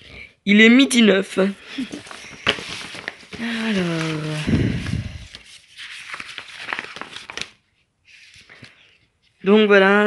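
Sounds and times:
paper rustling: 1.8 - 9.5.

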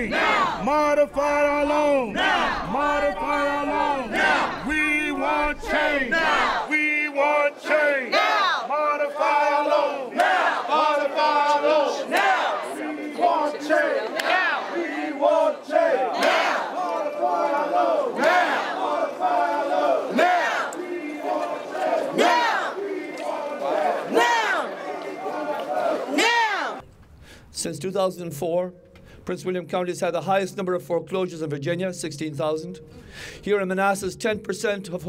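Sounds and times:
crowd chanting slogans: 0.0 - 26.8.

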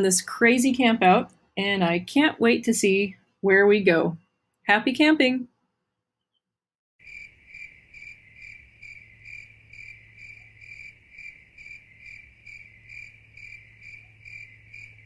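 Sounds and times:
cricket chirping: 7.0 - 15.0.

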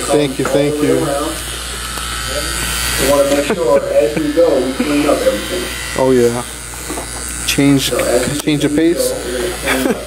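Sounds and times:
hair clipper buzzing: 0.0 - 10.0
people talking and laughing: 0.1 - 10.0.

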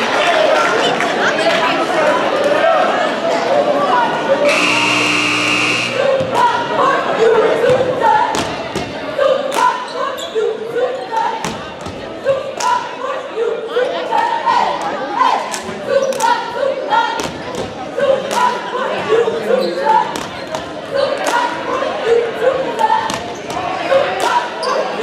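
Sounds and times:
cheerleaders chanting: 0.7 - 25.0
scoreboard buzzer: 4.4 - 6.1.

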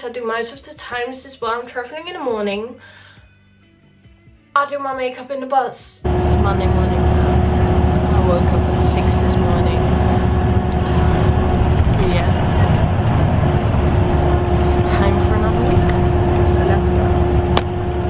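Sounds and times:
droning hum: 6.0 - 18.0
bus engine and road rumble: 6.1 - 18.0.

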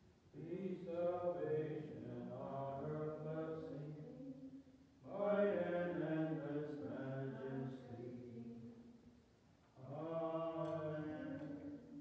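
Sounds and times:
man singing a hymn: 0.3 - 4.3, 5.0 - 8.6, 9.7 - 12.0.

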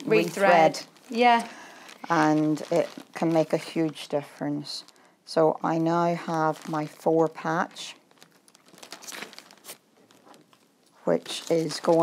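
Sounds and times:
fabric rustling: 0.0 - 4.0, 6.0 - 12.0.

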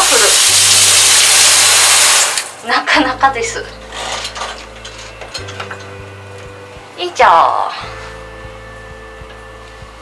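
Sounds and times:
shower spraying into bathtub: 0.0 - 2.6.

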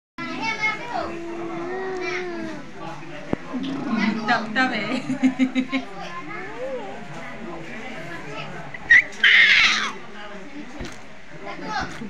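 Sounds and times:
baby squealing happily: 8.8 - 10.0.

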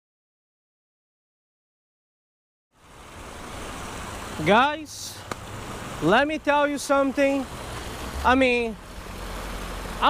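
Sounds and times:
flowing creek water: 2.7 - 10.0.

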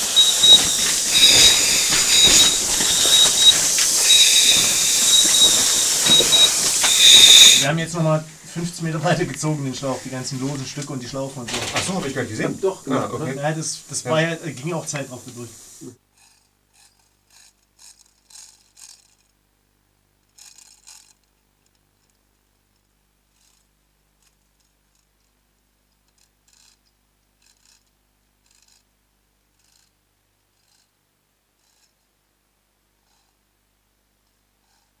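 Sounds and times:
chain hoist ratcheting clicks: 16.2 - 19.3.

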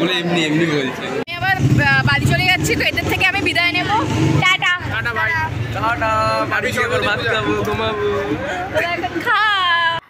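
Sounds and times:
people talking: 0.0 - 10.0.

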